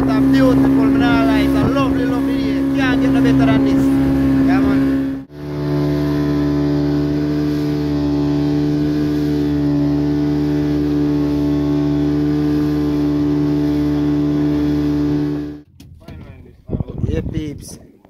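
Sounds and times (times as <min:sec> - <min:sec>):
outboard motor running: 0:00.0 - 0:16.4.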